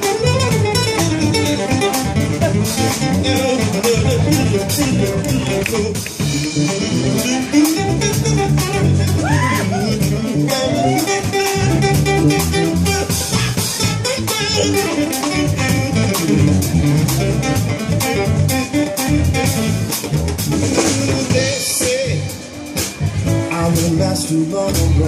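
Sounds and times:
drum kit steady beat: 0.0s - 25.0s
electric bass guitar: 0.0s - 25.0s
electric guitar lead: 0.0s - 25.0s.

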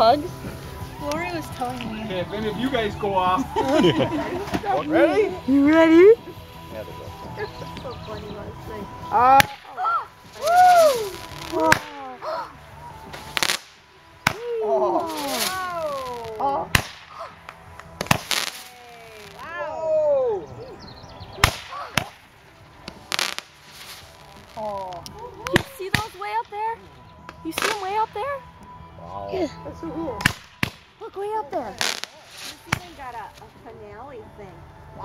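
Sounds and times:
fireworks hissing up: 8.6s - 19.5s, 21.4s - 26.6s, 27.5s - 28.2s, 31.7s - 33.4s
fireworks bangs: 9.4s - 12.1s, 13.0s - 19.4s, 21.4s - 26.5s, 27.5s - 28.1s, 31.8s - 33.2s.

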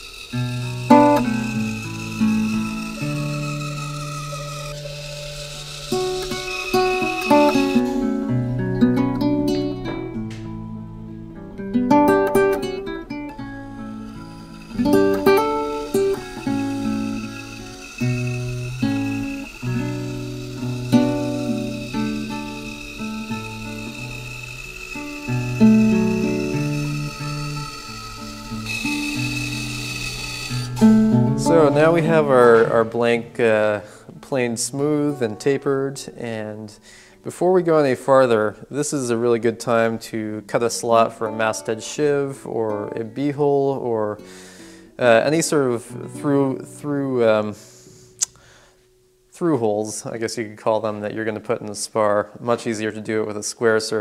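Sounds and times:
acoustic guitar playing: 0.0s - 38.4s, 39.0s - 49.4s.

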